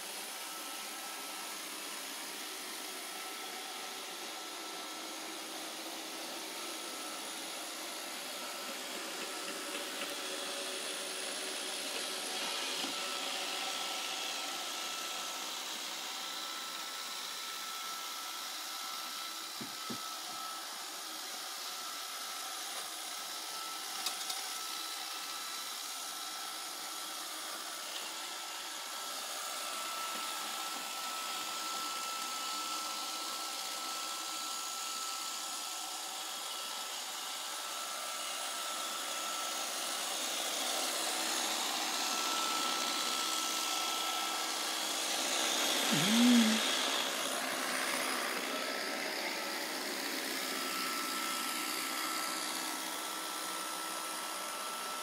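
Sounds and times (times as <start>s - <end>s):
robot vacuum whirring: 0.0s - 55.0s.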